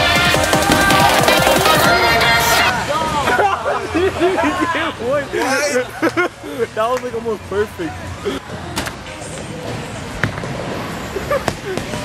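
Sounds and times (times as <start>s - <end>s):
bowling alley background noise: 0.0s - 12.0s.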